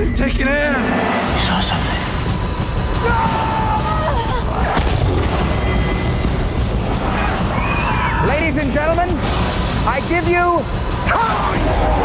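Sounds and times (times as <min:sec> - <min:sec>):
dramatic trailer music: 0:00.0 - 0:12.0.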